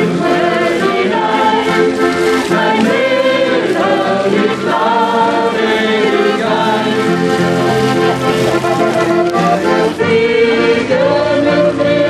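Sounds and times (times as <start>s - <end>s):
accordion: 0.0s - 12.0s
acoustic guitar: 0.0s - 12.0s
group of people singing: 0.0s - 12.0s.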